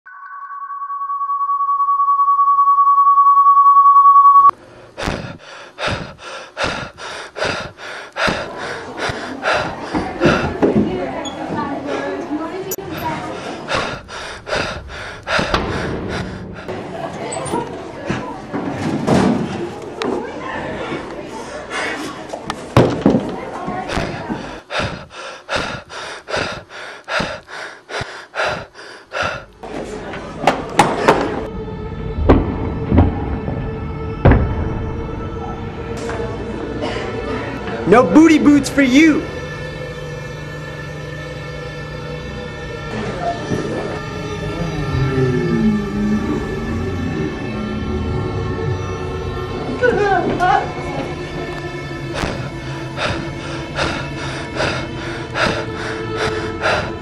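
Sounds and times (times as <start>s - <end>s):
steady test tone: 0.1s - 4.6s
person panting while running: 5.0s - 10.7s, 12.9s - 16.8s, 23.7s - 29.6s, 52.1s - 57.0s.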